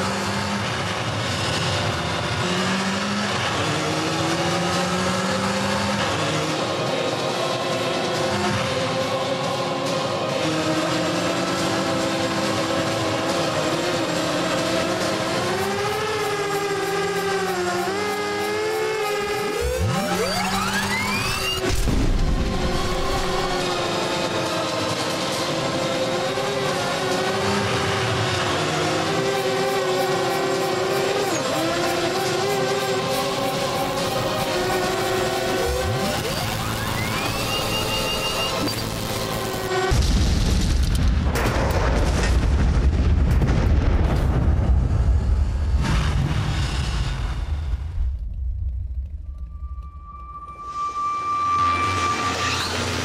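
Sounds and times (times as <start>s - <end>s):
motorcycle engine running hard: 0.0s - 40.2s
crackling debris: 35.1s - 50.2s
vehicle explosions rumbling: 39.9s - 49.0s.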